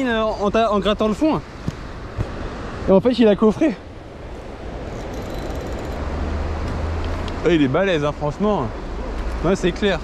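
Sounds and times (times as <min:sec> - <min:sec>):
rushing outdoor noise: 0:00.0 - 0:10.0.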